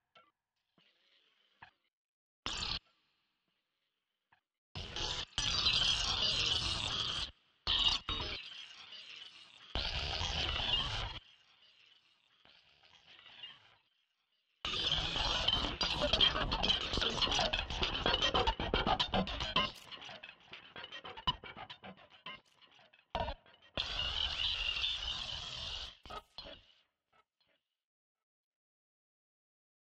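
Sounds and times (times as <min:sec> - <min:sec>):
noisy electronic synth texture: 0:14.8 - 0:22.5
rapid stuttering clicks: 0:14.9 - 0:22.5.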